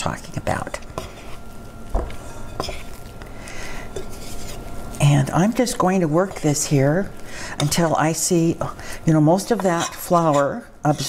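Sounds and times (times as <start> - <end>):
metal spoon stirring dough: 0.5 - 3.1, 3.8 - 11.0.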